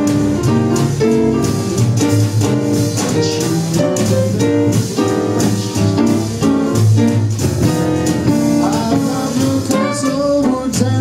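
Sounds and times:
drum kit: 0.0 - 11.0
piano: 0.0 - 11.0
plucked double bass walking: 0.0 - 11.0.

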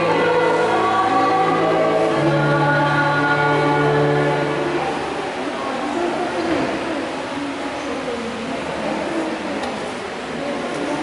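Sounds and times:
church choir singing a hymn: 0.0 - 5.1.

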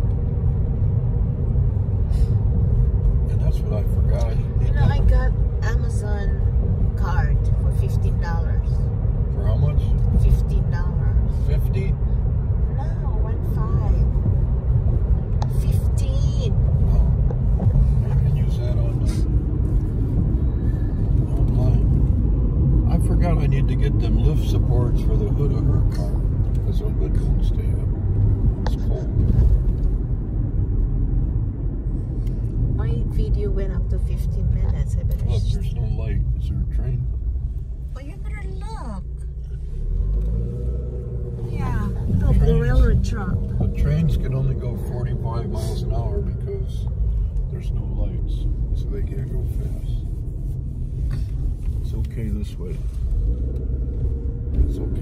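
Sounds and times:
road rumble and tyre noise: 0.0 - 55.0.

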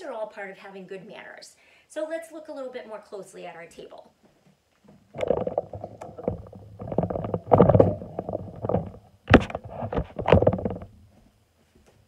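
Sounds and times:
rubbing and rustling on microphone: 4.2 - 12.0
sharp knocks on microphone: 4.9 - 10.9.

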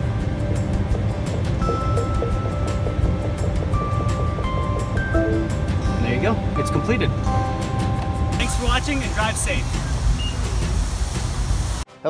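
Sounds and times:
outdoor background rumble: 0.0 - 11.8.

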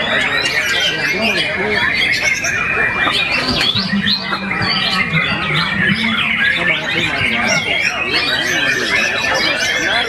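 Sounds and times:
birds singing whistles and trills: 0.0 - 10.0.

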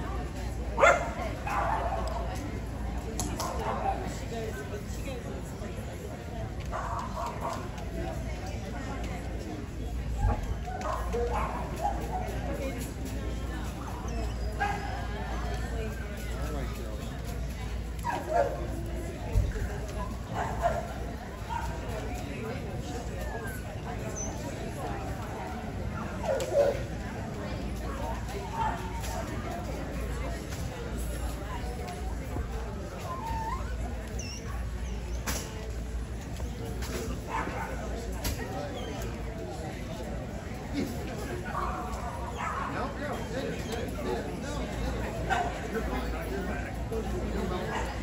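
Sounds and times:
crowd chatter: 0.0 - 48.0
murmur of voices: 0.0 - 48.0
dog barking: 0.8 - 2.1.

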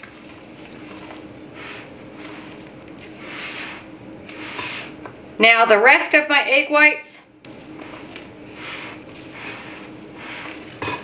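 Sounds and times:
spatula scraping and squelching batter: 0.0 - 5.0, 7.4 - 11.0.

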